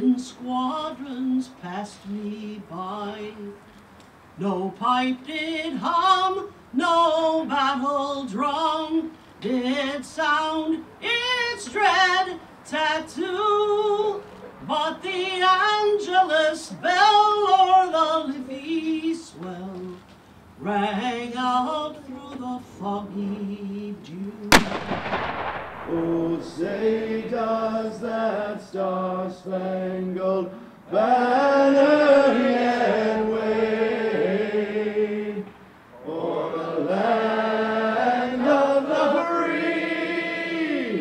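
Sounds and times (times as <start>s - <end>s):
cannon shot with echo: 24.5s - 27.6s.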